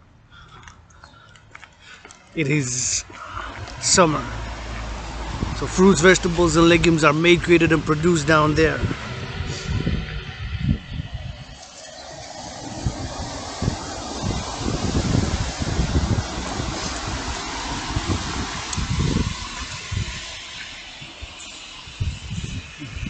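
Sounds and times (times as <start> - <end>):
street traffic: 0.0 - 23.0
wind buffeting microphone: 0.0 - 23.0.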